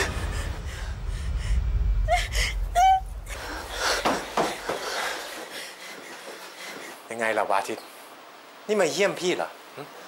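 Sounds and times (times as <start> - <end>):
woman crying out: 2.1 - 3.2.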